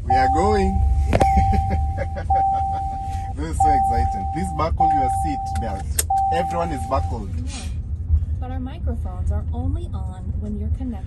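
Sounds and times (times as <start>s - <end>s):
seat belt reminder tone: 0.0s - 7.3s
low cabin rumble: 0.0s - 11.0s.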